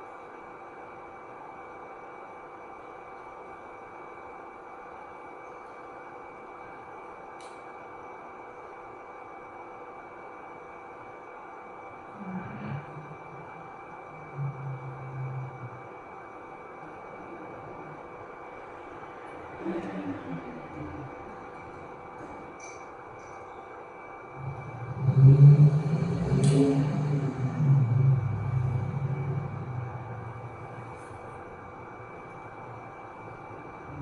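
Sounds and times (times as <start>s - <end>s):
ambient low drone: 9.8s - 34.0s
deep held notes: 24.4s - 34.0s.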